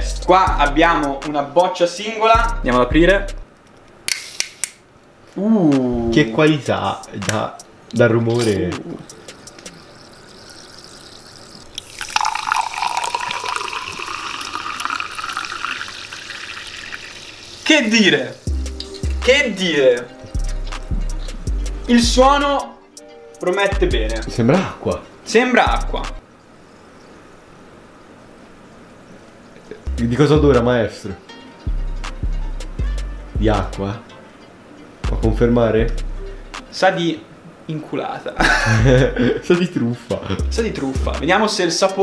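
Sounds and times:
fizzing bubbles crackling: 0:08.8 - 0:19.7
water pouring into a glass: 0:09.1 - 0:18.4.

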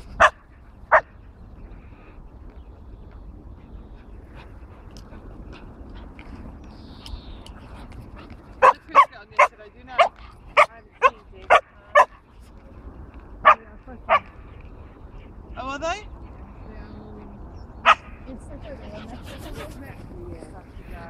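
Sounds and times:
dog barking sharply: 0:17.8 - 0:18.1.

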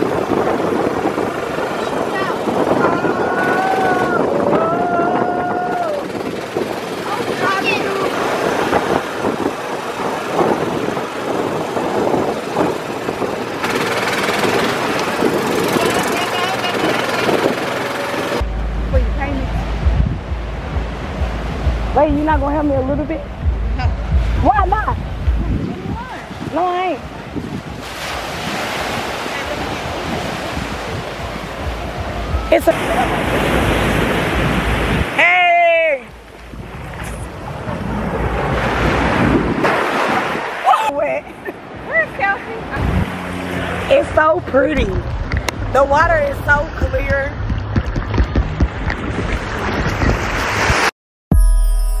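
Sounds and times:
surf breaking on a beach: 0:00.0 - 0:50.9
wind on the microphone: 0:00.0 - 0:50.9
voices: 0:01.6 - 0:08.8, 0:13.6 - 0:27.4, 0:29.0 - 0:33.7, 0:40.6 - 0:47.4
music: 0:18.4 - 0:25.8, 0:51.3 - 0:52.0.

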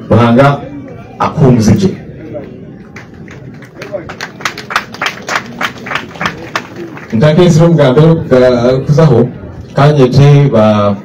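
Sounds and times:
people clapping in rhythm: 0:02.4 - 0:07.5.

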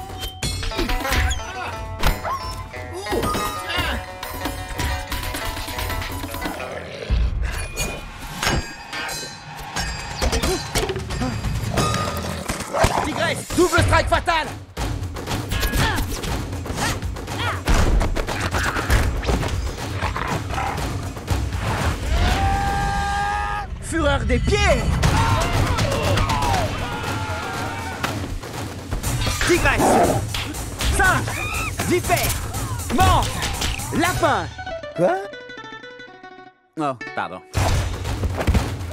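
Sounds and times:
dramatic film score: 0:00.0 - 0:35.6.

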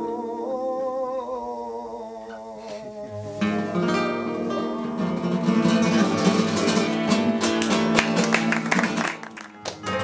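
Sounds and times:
man singing a long wavering note: 0:00.0 - 0:03.9.

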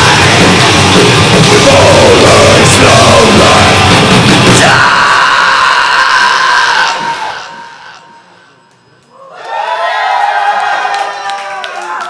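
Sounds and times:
crowd cheering: 0:00.0 - 0:08.2, 0:09.1 - 0:12.0.

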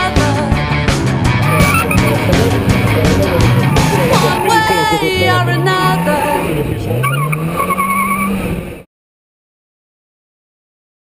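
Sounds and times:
car engine revving hard: 0:01.4 - 0:08.8
tyres squealing: 0:01.4 - 0:08.8.

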